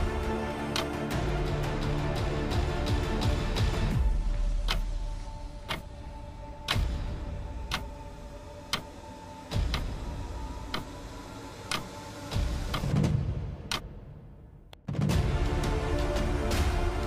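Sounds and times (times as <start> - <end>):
clock ticking: 4.6 - 5.0, 5.6 - 5.9, 7.7 - 8.0, 8.7 - 8.9, 9.5 - 10.1.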